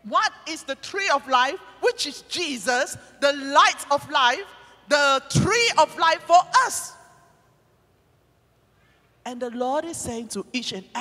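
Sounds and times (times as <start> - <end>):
amplified voice echoing in hall: 0.0 - 7.6, 9.2 - 11.0.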